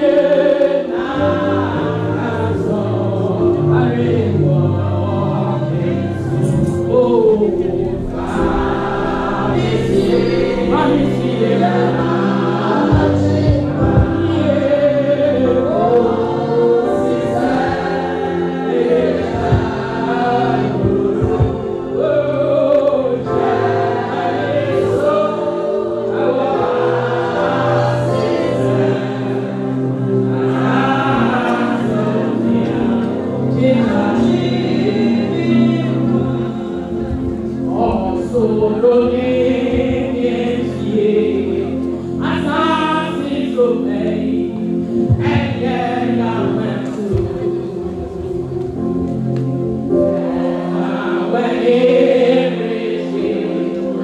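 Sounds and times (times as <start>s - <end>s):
group singing gospel: 0.0s - 54.0s
low instrumental accompaniment: 0.0s - 54.0s.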